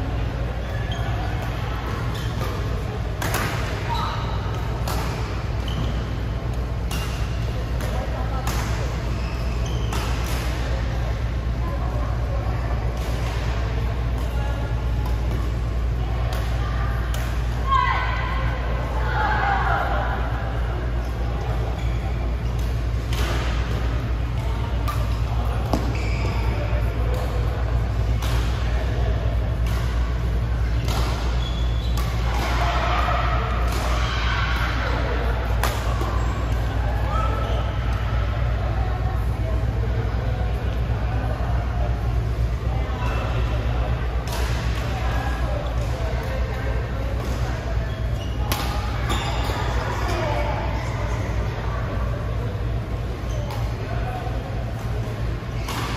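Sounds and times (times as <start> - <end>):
players' voices: 0.0 - 55.9
steady low hum: 0.0 - 55.9
rackets hitting shuttlecock: 1.3 - 9.1, 22.5 - 36.7, 48.5 - 50.2.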